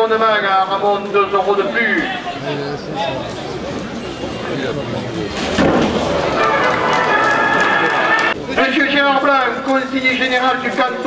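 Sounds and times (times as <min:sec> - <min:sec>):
man's voice over loudspeaker: 0:00.0 - 0:03.1, 0:08.5 - 0:11.0.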